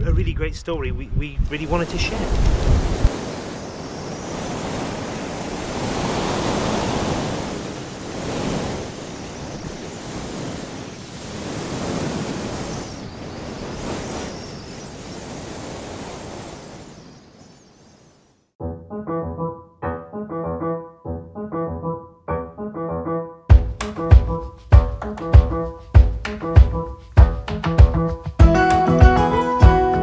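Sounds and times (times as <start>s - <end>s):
wind: 0.0s - 18.6s
sea noise: 1.5s - 18.5s.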